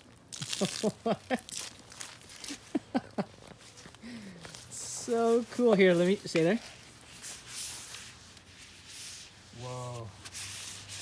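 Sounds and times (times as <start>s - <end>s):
person laughing: 0.4s - 1.6s, 2.5s - 3.4s.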